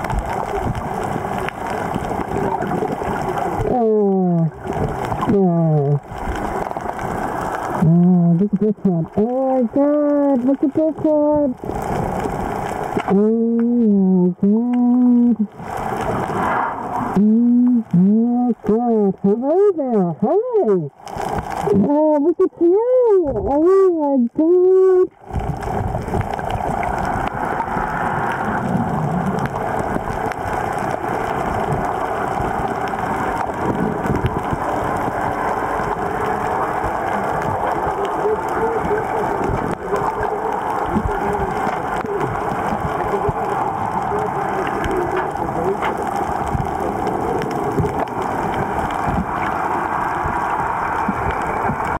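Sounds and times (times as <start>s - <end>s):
muffled underwater noise: 0.0s - 52.0s
water gurgling: 0.0s - 52.0s.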